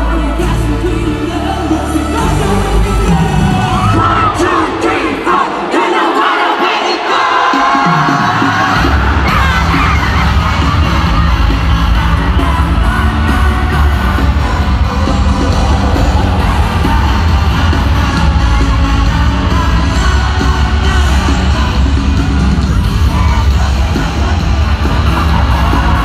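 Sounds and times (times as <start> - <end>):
large crowd cheering: 0.0 - 26.0
pop music over arena speakers: 0.0 - 26.0
heavy bass beat: 7.5 - 26.0.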